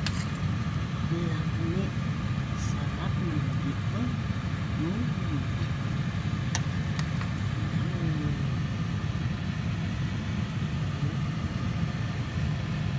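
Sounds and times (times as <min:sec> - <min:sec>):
steady low hum: 0:00.0 - 0:12.9.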